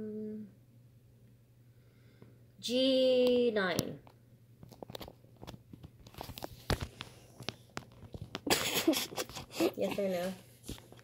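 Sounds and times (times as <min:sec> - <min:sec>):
small clicks and crunches: 0:04.6 - 0:08.5.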